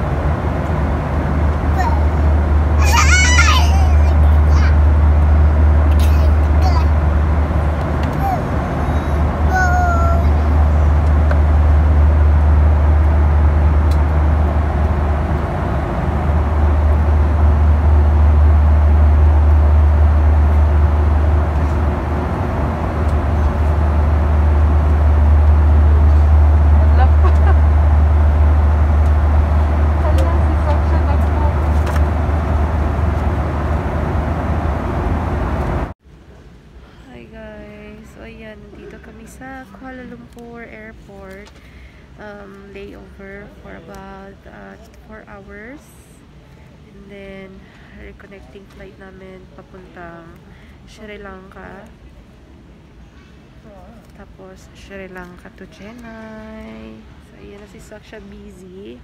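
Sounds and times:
airliner cabin rumble: 0.0 - 36.0
child's voice: 1.7 - 2.2, 2.8 - 4.9, 5.9 - 7.0, 8.0 - 10.8.

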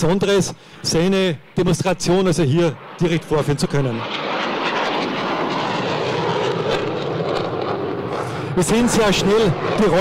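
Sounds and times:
jet fighter passing overhead: 0.1 - 10.0.

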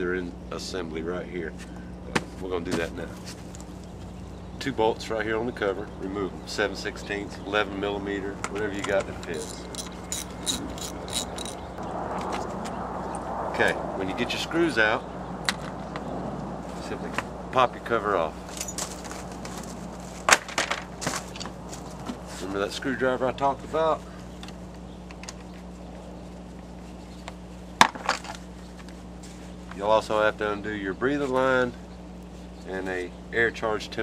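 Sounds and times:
steady low hum: 0.0 - 34.0
ratchet wrench clicking: 8.8 - 11.6.

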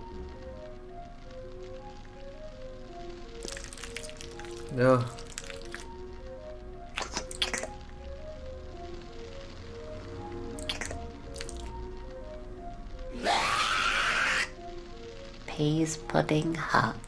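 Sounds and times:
plinking cartoon music: 0.0 - 17.0.

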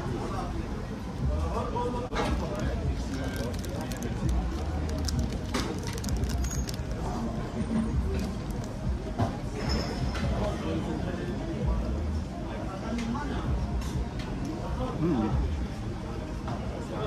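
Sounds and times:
background chatter: 0.0 - 17.0
low urban rumble: 0.0 - 17.0
crunchy biting and chewing: 2.4 - 7.1.

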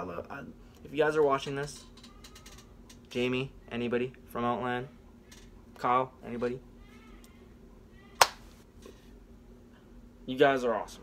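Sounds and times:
hand clap: 8.2 - 8.4.

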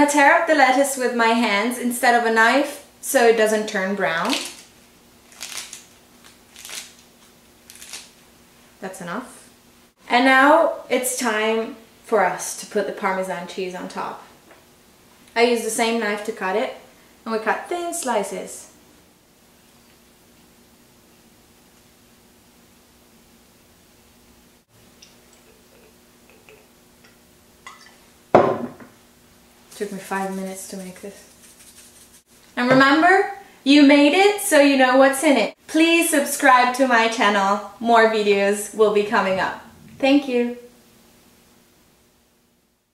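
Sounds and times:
lettuce leaves tearing: 4.2 - 8.2
knock on wooden table: 28.4 - 29.0
knife shaving cheese: 29.7 - 32.3.

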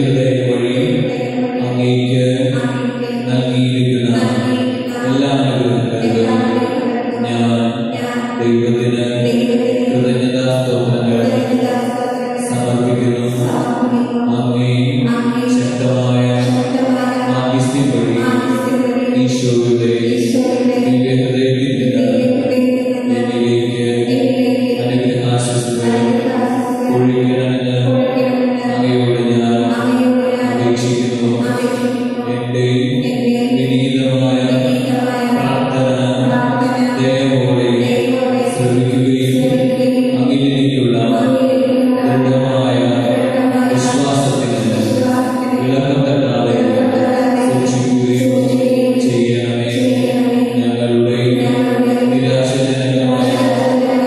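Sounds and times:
sustained accompaniment notes: 12.4 - 54.0.

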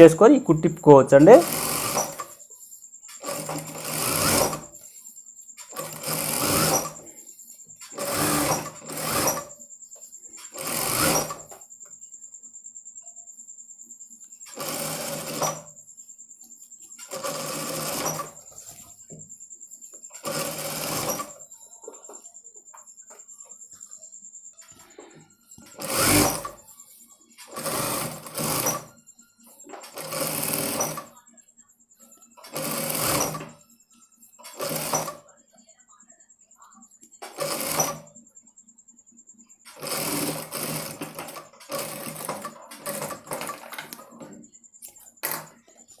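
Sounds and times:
sewing machine stitching: 0.0 - 2.4, 3.1 - 4.9, 5.6 - 7.2, 7.8 - 9.6, 10.4 - 11.6, 14.5 - 15.8, 17.0 - 18.9, 20.1 - 21.5, 25.6 - 26.7, 27.4 - 29.0, 29.6 - 31.2, 32.4 - 33.6, 34.4 - 35.2, 37.2 - 38.1, 39.7 - 44.4.

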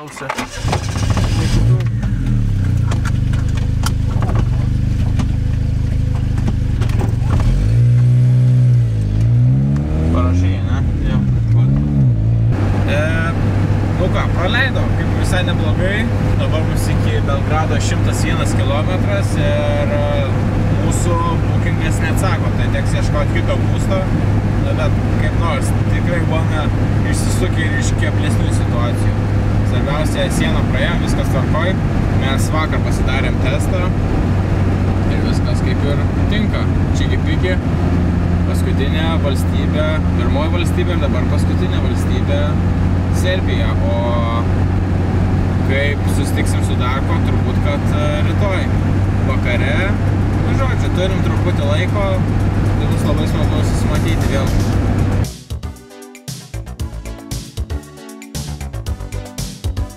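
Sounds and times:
car engine revving: 0.0 - 55.8
engine drone with road noise: 0.0 - 59.9.

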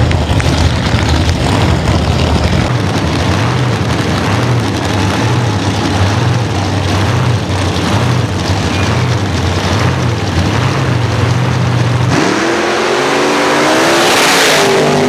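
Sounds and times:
drag car engines idling loudly: 0.0 - 15.0.

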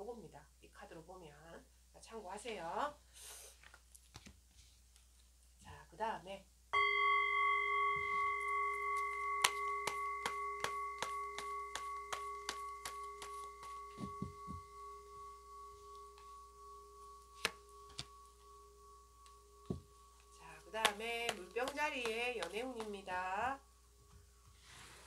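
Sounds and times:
cards being shuffled: 3.5 - 5.3
singing bowl ringing: 6.8 - 25.0.

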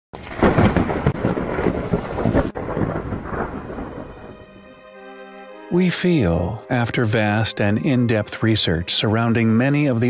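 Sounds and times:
thunder crackling and rumbling: 0.2 - 4.5
rain hiss: 0.3 - 4.5.

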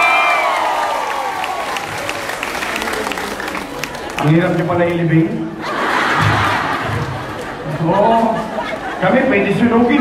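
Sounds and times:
crowd cheering: 0.0 - 4.7, 5.6 - 9.0
crowd applauding: 0.0 - 5.0.

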